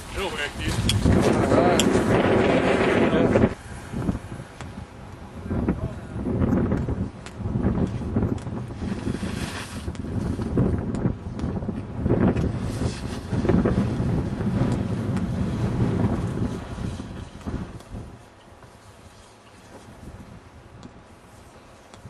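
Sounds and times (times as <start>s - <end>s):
gusty wind buffeting microphone: 0.0s - 22.0s.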